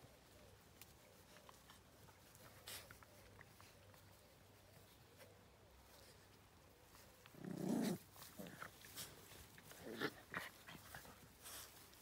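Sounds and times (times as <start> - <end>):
dogs moving in grass: 0.0 - 12.0
dog growling: 7.3 - 8.8.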